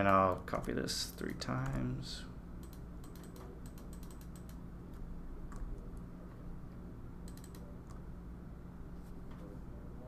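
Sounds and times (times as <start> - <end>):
low steady hum: 0.0 - 10.0
computer keyboard keys clicking: 2.6 - 4.6, 7.3 - 8.0.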